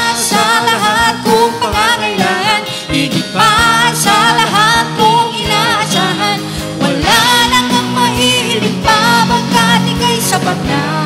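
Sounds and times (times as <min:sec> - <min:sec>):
band playing praise song: 0:00.0 - 0:11.0
man and woman singing together: 0:00.0 - 0:11.0.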